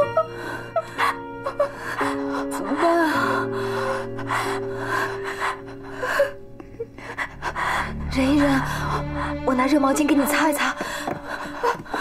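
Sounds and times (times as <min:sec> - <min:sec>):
music with low held notes: 0:00.0 - 0:12.0
woman panting in pain: 0:10.8 - 0:12.0.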